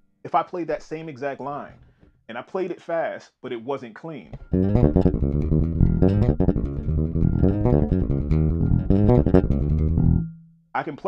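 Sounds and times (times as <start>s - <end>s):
electric bass guitar groove: 4.4s - 10.3s.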